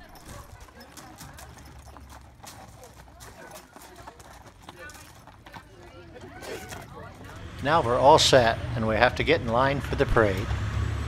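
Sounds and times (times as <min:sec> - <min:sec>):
horse hooves on gravel: 0:00.0 - 0:10.5.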